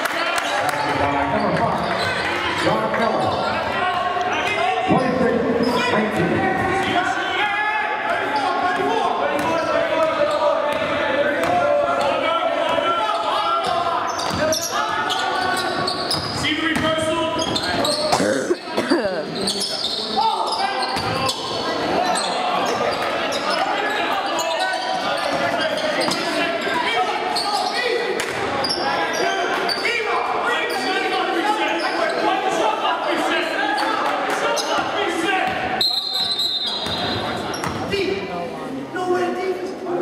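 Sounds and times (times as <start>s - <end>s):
crowd chatter and shouts: 0.0s - 40.0s
referee's whistle: 35.8s - 37.4s.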